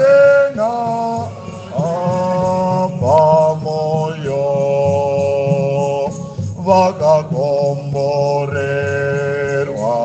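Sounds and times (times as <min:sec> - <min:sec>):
low accompaniment: 0:00.0 - 0:10.0
person singing a hymn: 0:00.0 - 0:10.0.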